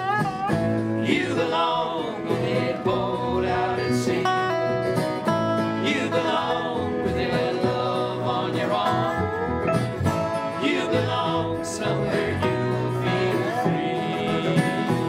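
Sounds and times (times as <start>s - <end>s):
strummed acoustic guitars: 0.0s - 15.0s
several voices singing together: 1.0s - 4.8s, 5.6s - 9.5s, 10.1s - 15.0s.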